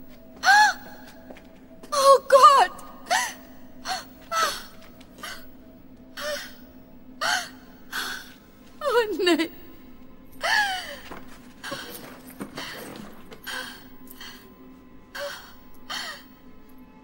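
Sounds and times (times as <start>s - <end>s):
woman sobbing: 3.0s - 5.6s, 10.4s - 11.9s.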